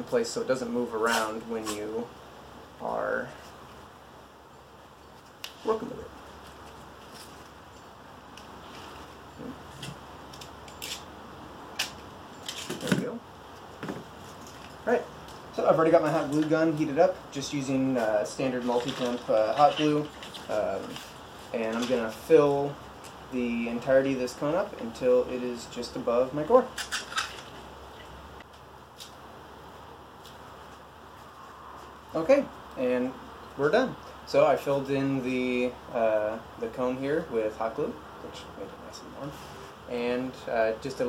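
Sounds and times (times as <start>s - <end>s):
adhesive tape ripping: 9.8s - 11.1s, 11.7s - 13.0s.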